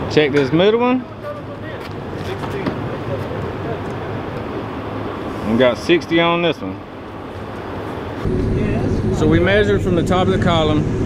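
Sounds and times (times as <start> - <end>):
noisy rush: 0.0 - 11.0
low even hum: 6.8 - 11.0.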